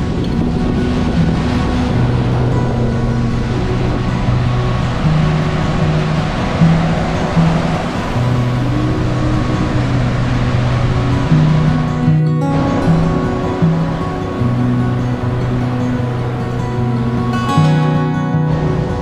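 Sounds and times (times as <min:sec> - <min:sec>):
background music with low notes: 0:00.0 - 0:19.0
steady wash of noise: 0:00.0 - 0:19.0.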